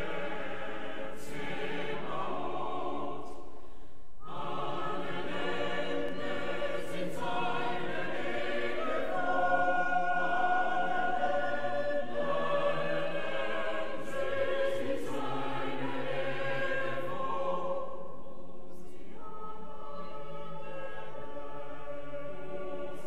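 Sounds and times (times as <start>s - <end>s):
choir singing: 0.0s - 3.6s, 4.2s - 23.0s.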